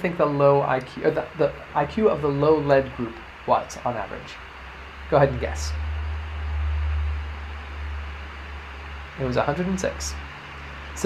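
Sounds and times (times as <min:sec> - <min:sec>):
low rumble with faint hiss: 0:00.0 - 0:11.0.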